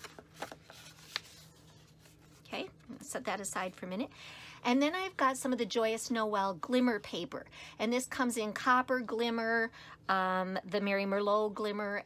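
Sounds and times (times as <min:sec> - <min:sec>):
paper crackling: 0:00.0 - 0:02.5
paper rustling: 0:00.0 - 0:02.5.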